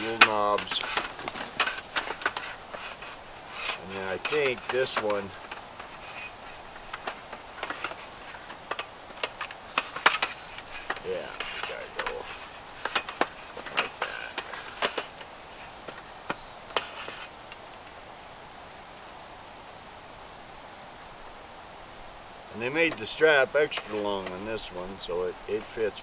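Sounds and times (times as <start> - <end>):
metal slats clicking and clattering: 0.0 - 16.1.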